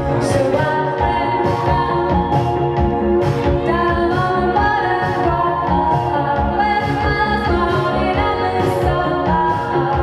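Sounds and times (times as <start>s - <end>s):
drum kit beat: 0.0s - 10.0s
electronic keyboards: 0.0s - 10.0s
woman singing into a microphone: 0.0s - 10.0s.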